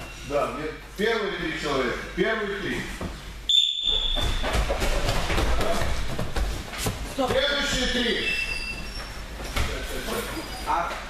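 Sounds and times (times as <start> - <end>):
barefoot running on mats: 4.0 - 9.0.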